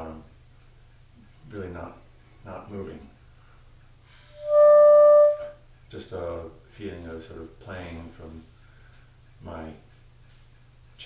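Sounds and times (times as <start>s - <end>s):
clarinet held note: 4.3s - 5.6s.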